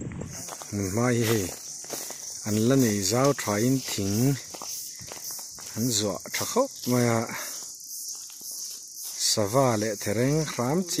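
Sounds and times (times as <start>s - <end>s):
footsteps: 0.0s - 10.7s
high-pitched insect drone: 0.0s - 11.0s
man talking: 0.4s - 1.6s, 2.4s - 4.5s, 5.7s - 7.5s, 9.2s - 11.0s.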